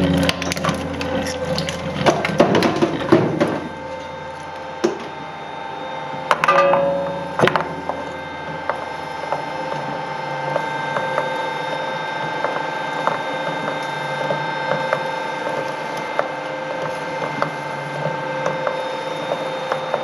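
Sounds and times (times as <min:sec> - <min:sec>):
shredder humming and whining: 0:00.0 - 0:20.0
loud metallic clangs: 0:06.3 - 0:08.2.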